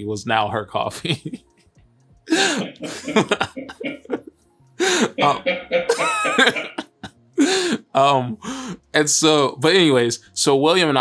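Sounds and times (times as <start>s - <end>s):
men laughing: 2.3s - 7.5s
person coughing: 5.2s - 6.8s.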